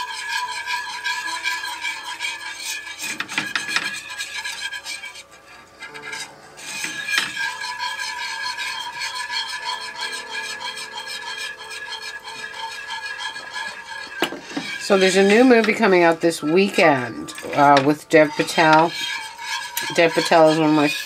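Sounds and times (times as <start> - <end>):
wire whisk scraping a skillet: 0.0 - 21.0.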